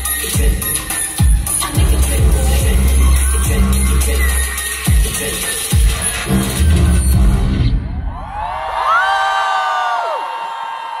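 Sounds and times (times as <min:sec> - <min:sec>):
pop dance track: 0:00.0 - 0:07.7
audience screaming and cheering: 0:07.6 - 0:11.0.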